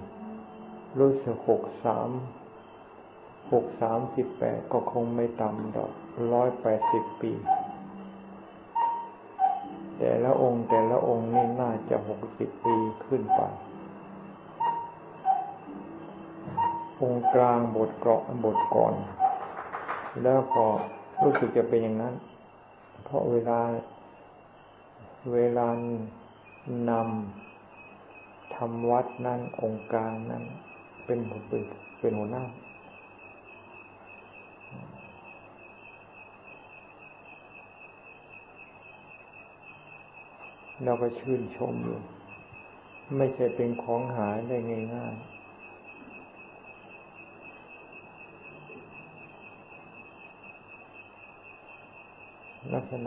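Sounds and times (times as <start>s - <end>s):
bird calling: 0.0s - 53.0s
recording hiss: 0.0s - 53.0s
thin high whine: 0.0s - 53.0s.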